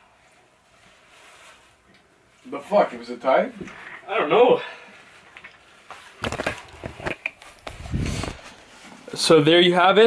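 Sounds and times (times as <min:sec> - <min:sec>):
camera handling knocks and rubbing: 0:06.2 - 0:08.4.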